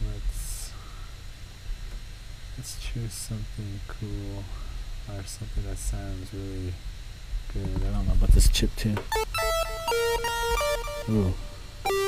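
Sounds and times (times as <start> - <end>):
chiptune synthesizer melody: 9.1 - 12.0.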